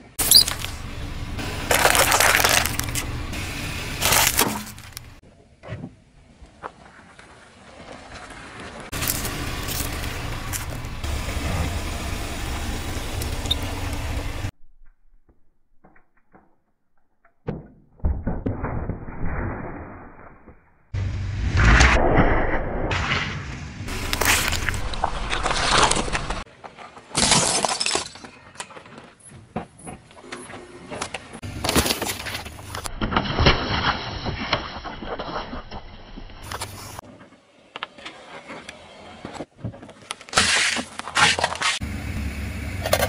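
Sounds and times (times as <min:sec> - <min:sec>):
plastic and toothpicks crunching: 0:00.2 - 0:00.8, 0:01.7 - 0:03.1, 0:04.0 - 0:05.2, 0:08.9 - 0:10.9
car engine running: 0:00.2 - 0:05.2, 0:08.9 - 0:14.5, 0:23.9 - 0:26.4, 0:41.8 - 0:43.0
sharp crackles: 0:00.2 - 0:05.2, 0:08.9 - 0:17.1, 0:18.5 - 0:26.5.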